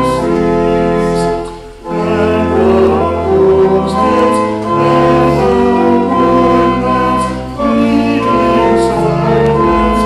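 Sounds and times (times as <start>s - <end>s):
hymn singing: 0.0s - 10.0s
sustained chords: 8.0s - 10.0s.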